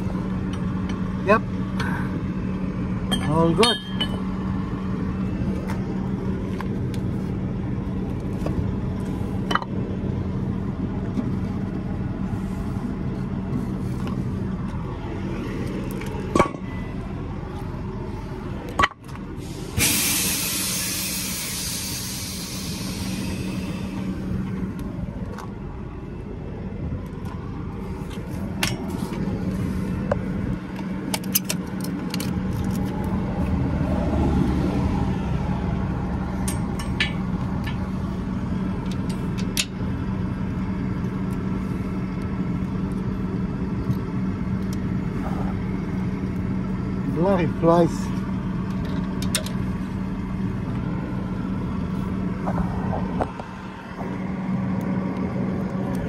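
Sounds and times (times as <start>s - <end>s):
diesel truck engine idling: 0.0s - 56.0s
metal clinks and knocks: 3.1s - 4.3s, 36.4s - 37.9s
compressed air hissing: 19.4s - 24.2s.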